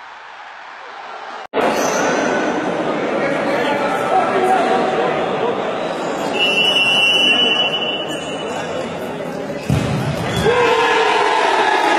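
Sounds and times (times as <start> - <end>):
echoing voices in sports hall: 0.0 - 11.9.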